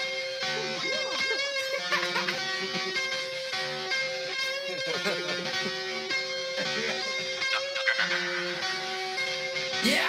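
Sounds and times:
guitar-led music: 0.0s - 10.0s.

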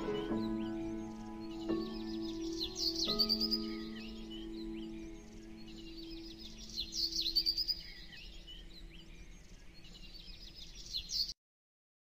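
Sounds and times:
small birds chirping: 0.0s - 11.4s.

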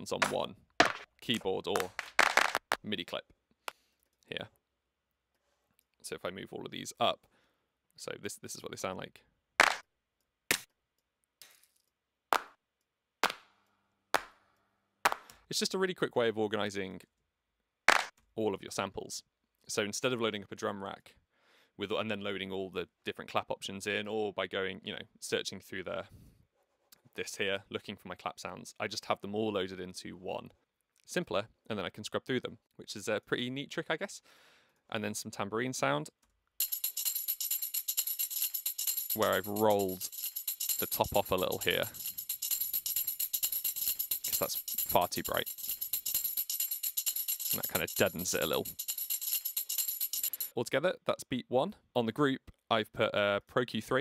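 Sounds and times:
sharp hand claps: 1.8s - 2.8s, 9.6s - 9.8s, 12.3s - 12.6s, 13.2s - 13.5s, 14.2s - 14.4s, 15.1s - 15.3s, 17.9s - 18.1s
tambourine loop jingling: 36.6s - 50.6s.

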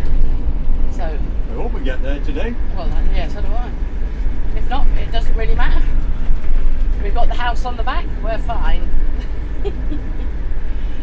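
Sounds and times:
engine and road noise: 0.0s - 11.0s.

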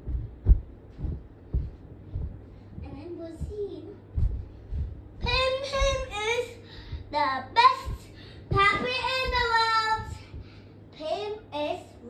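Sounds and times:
child singing without words: 5.2s - 10.4s.

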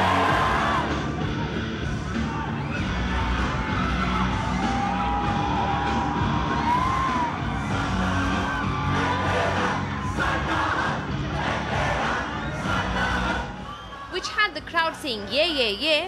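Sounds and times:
crowd screaming and cheering: 0.0s - 16.0s.

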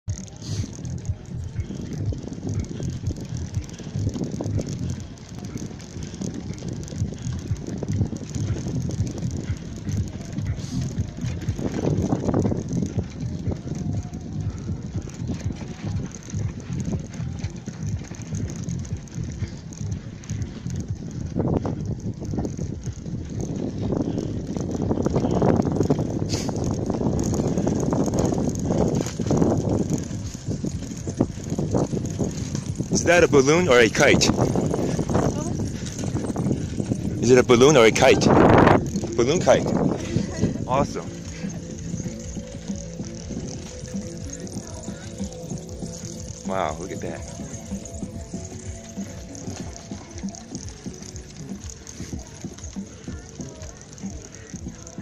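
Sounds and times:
bicycle mechanism rattling: 0.0s - 55.0s
bicycle tyres crunching: 0.0s - 55.0s.

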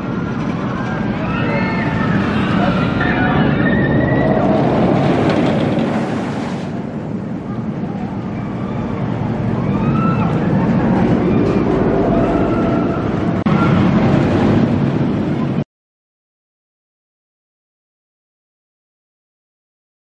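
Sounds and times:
roller coaster rumbling on wooden track: 0.0s - 15.6s
riders screaming: 0.8s - 5.0s.

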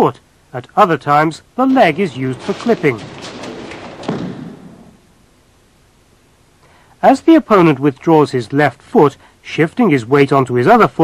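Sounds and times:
feet scuffing on mat: 1.7s - 5.0s
body thudding on mat: 1.8s - 5.0s.

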